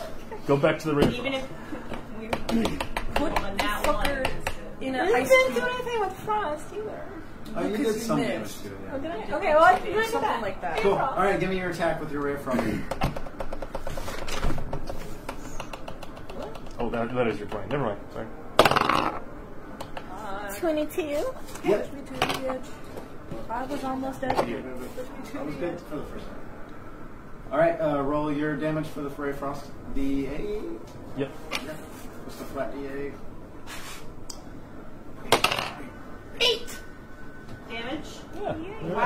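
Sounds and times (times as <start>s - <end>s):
die clattering on table: 35.3s - 35.8s.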